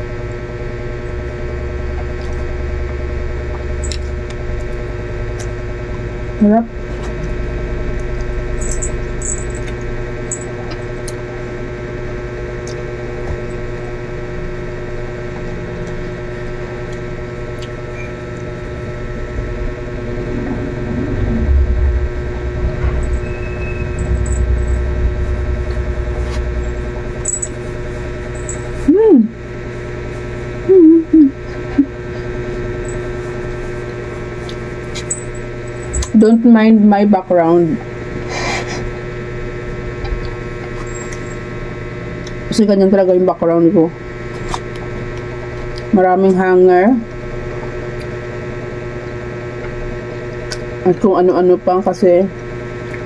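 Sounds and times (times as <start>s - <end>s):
electrical hum: 0.0s - 53.0s
hummed mm sounds: 0.0s - 53.0s.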